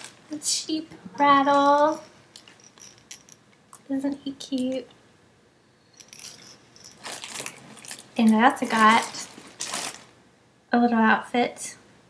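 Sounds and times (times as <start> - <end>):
rustling and handling noises: 0.0 - 4.9, 6.0 - 10.2
toy rattle jingling: 1.4 - 3.9, 5.9 - 8.0.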